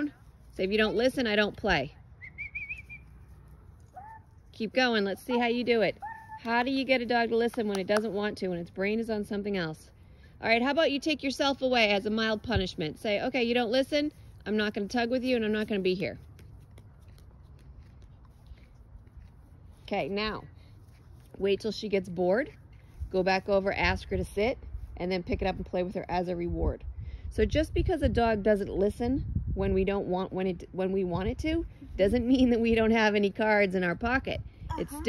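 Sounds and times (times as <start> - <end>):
quiet outdoor background: 0.0 - 35.0
faint high wavering whistle: 2.2 - 3.2
wind rumble on microphone: 22.8 - 35.0.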